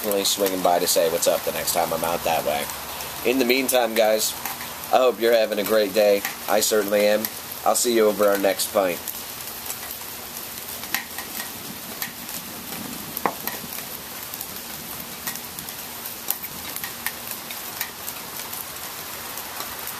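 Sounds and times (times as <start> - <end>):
rain falling and dripping: 0.0 - 19.9.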